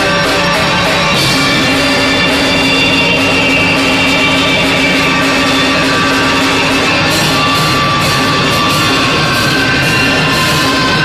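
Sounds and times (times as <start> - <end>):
drum kit with cymbals: 0.0 - 11.0
live band music: 0.0 - 11.0.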